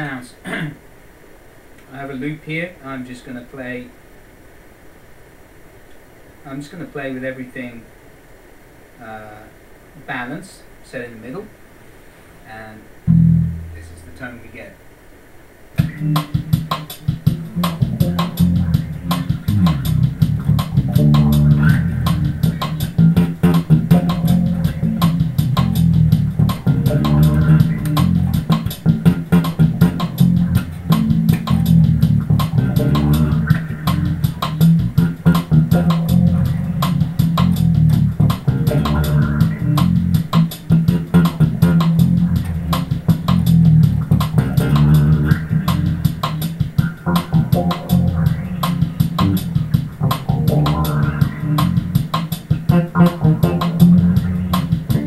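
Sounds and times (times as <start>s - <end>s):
electric bass line: 13.1s - 14.2s, 15.8s - 55.0s
backing beat: 13.1s - 14.4s, 15.8s - 55.0s.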